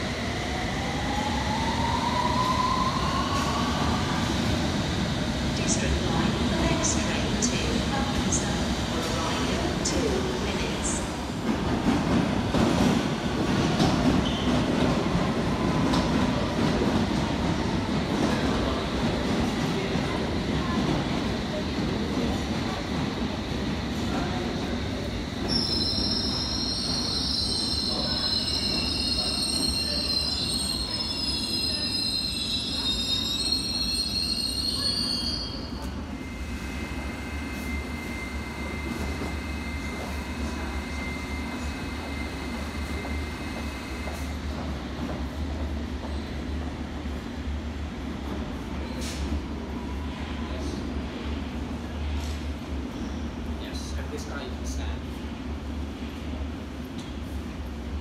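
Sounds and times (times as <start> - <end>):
train rumbling: 0.0 - 58.0
wheels squealing on rail: 14.2 - 14.6, 25.4 - 44.2.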